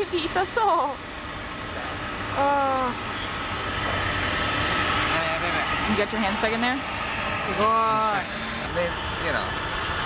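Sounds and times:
jet engine rushing with high whine: 0:00.0 - 0:10.0.

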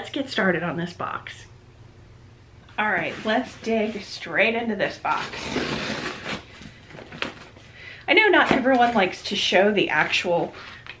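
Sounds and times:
blade slitting packing tape: 0:05.1 - 0:06.5.

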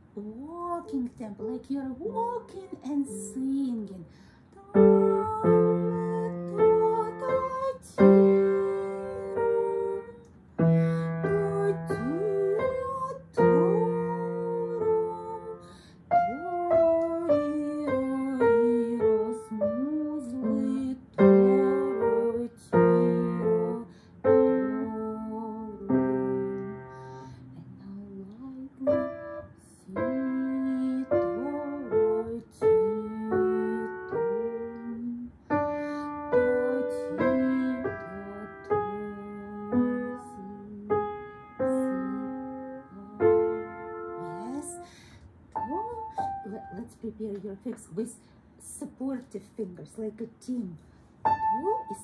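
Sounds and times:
slow piano piece: 0:00.0 - 0:47.0, 0:51.1 - 0:52.0.

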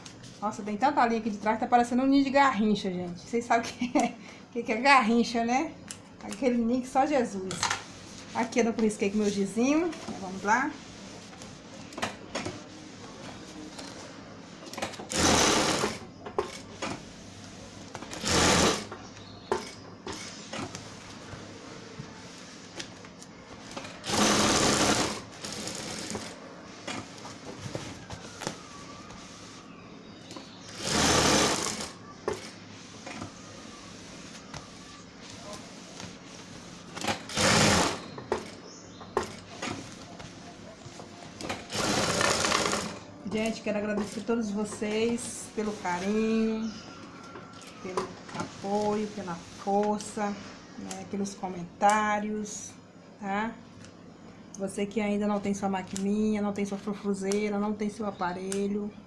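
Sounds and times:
sewing machine stitching: 0:15.0 - 0:16.6, 0:18.1 - 0:18.9, 0:24.0 - 0:26.4, 0:30.7 - 0:32.0, 0:37.0 - 0:38.0, 0:41.5 - 0:43.0.

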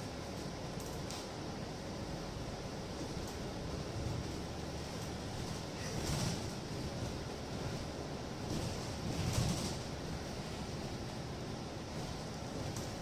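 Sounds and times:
bus engine and road rumble: 0:00.0 - 0:13.0.

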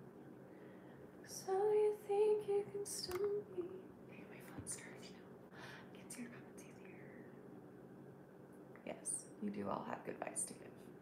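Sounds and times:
low steady hum: 0:00.0 - 0:11.0
woman whispering: 0:04.1 - 0:05.2, 0:05.9 - 0:07.3.

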